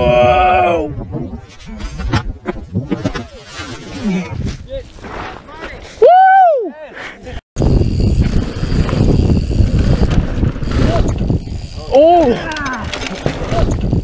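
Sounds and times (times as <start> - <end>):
loud shout: 6.0 - 6.8
mountain bike rolling on dirt: 7.6 - 14.0
wind rumbling on microphone: 7.6 - 14.0.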